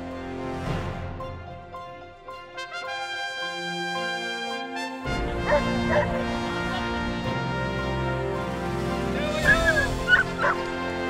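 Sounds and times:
background music: 0.0 - 11.0
dogs yelping and barking: 5.4 - 6.4, 9.4 - 10.8.

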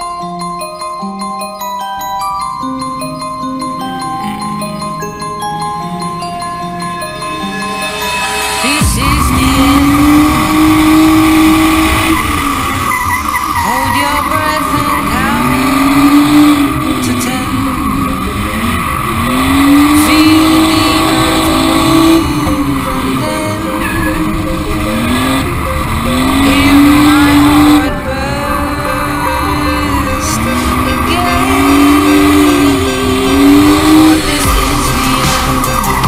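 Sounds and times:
car engine revving: 2.9 - 36.0
tyres squealing: 3.8 - 36.0.

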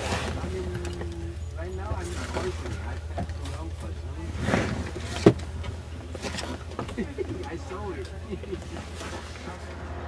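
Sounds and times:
train low hum: 0.0 - 10.0.

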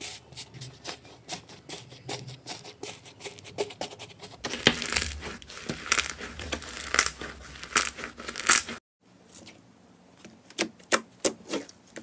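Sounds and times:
foam slime crunching: 4.4 - 8.8.

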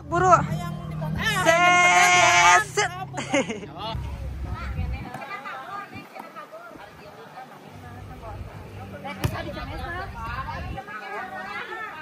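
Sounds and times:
faint voices chattering: 0.0 - 12.0.

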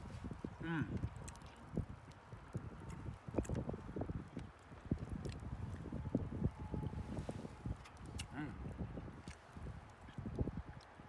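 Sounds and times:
chewing and mouth smacks: 0.5 - 6.3, 7.6 - 11.0.

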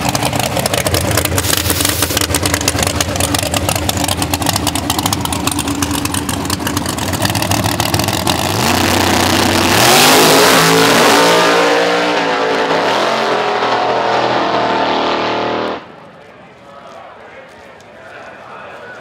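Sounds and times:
drag racing car engine: 0.0 - 16.0.

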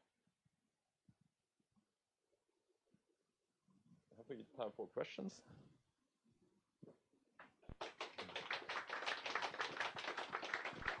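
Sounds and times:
audience applause: 7.7 - 11.0.

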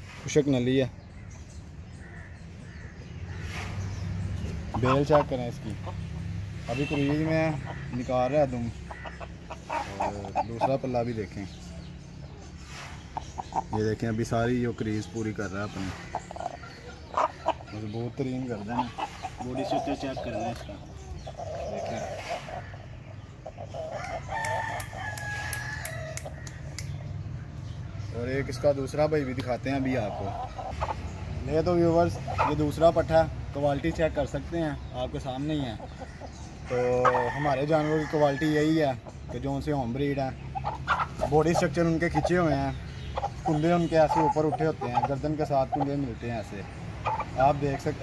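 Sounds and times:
faint bird calls: 0.1 - 37.5
rooster crowing: 24.0 - 26.2.

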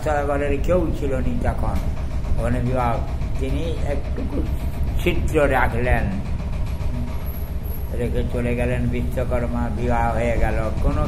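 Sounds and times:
steady low rumble: 2.2 - 9.8
elderly man talking: 7.9 - 11.0.

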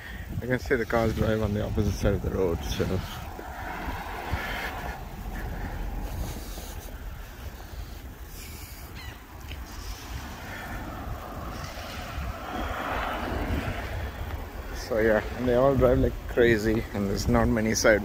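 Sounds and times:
outdoor hiss: 0.0 - 18.0
wind buffeting microphone: 0.0 - 18.0.

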